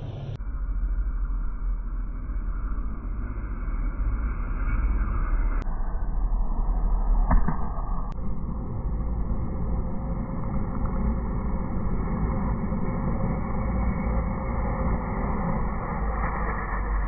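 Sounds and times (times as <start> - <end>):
racing car engines droning: 0.0 - 0.4.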